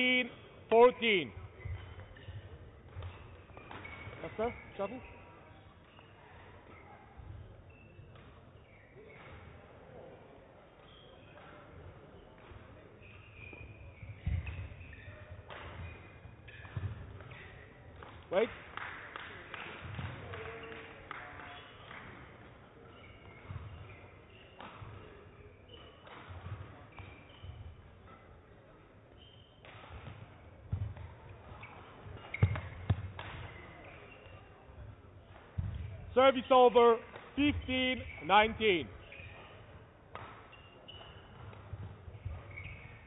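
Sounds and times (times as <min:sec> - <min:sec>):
shoe squeaks: 0:00.0 - 0:09.6, 0:10.8 - 0:18.4, 0:22.8 - 0:34.8, 0:36.1 - 0:43.0.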